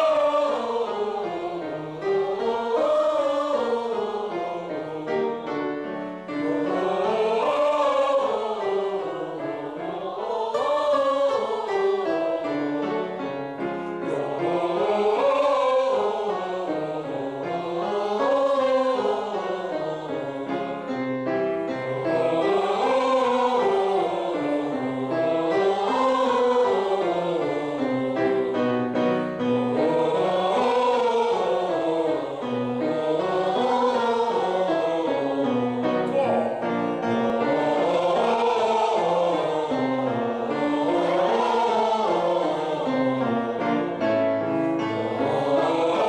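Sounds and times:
group singing vocal warm-up: 0.0s - 46.0s
piano accompaniment: 0.0s - 46.0s.

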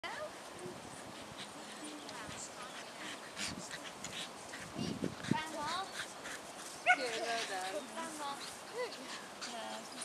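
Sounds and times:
faint voices: 0.0s - 10.0s
outdoor background noise: 0.0s - 10.0s.

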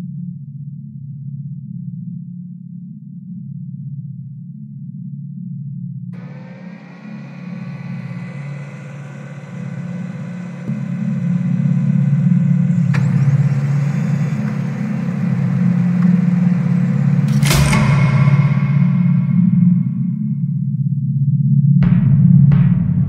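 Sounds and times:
low electric hum: 6.2s - 20.5s.

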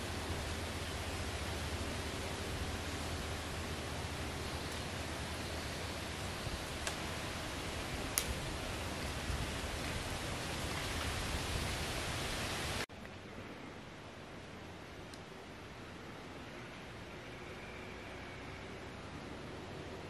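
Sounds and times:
wind rumble on microphone: 0.0s - 12.8s
wind through tree leaves: 0.0s - 20.0s.

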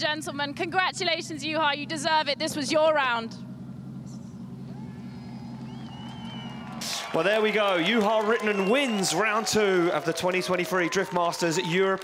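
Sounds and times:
car engine idling: 0.0s - 11.8s.

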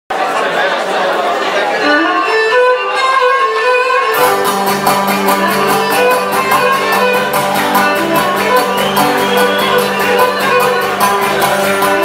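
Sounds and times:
audience chatter: 0.1s - 12.0s
lyra melody: 2.2s - 12.0s.

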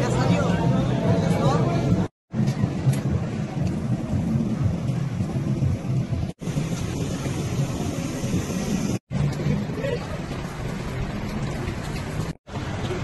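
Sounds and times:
rumbling outdoor noise with hiss: 2.3s - 13.0s.

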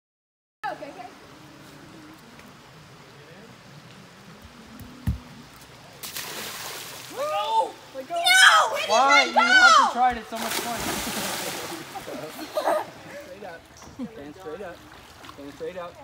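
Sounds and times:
river flowing: 0.6s - 16.0s.

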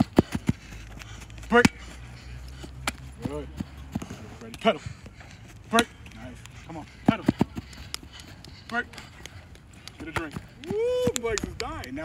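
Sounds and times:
feet tapping on artificial turf: 0.0s - 12.0s
person shouting: 10.6s - 11.2s.

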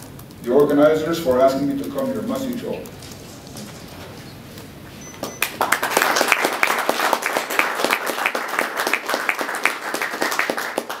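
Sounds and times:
audience applauding: 5.2s - 11.0s.

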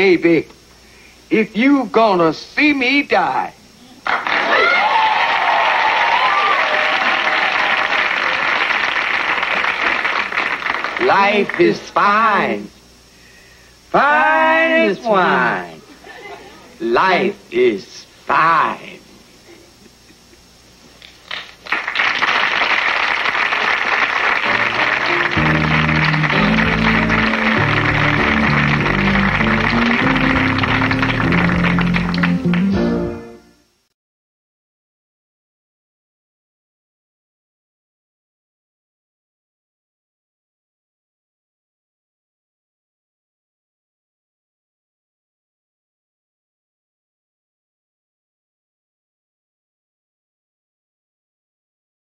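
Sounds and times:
studio audience applauding: 4.0s - 12.3s, 21.0s - 33.0s
theme music with bass line: 24.5s - 33.4s.

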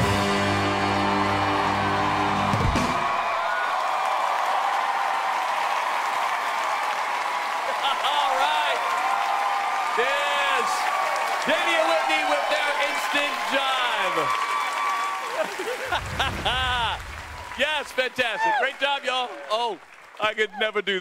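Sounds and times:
audience applauding and cheering: 0.0s - 21.0s
voices over applause: 1.4s - 21.0s.

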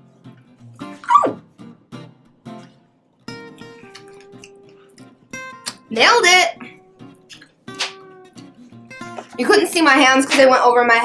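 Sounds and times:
plucked guitar music: 0.0s - 11.0s
woman yelping: 1.0s - 1.4s.

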